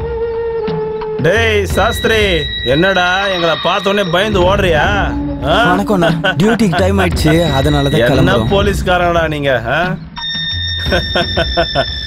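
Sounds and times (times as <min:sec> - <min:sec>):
high alarm-like ringing tone: 0:01.8 - 0:04.6, 0:07.4 - 0:08.9, 0:10.2 - 0:12.0.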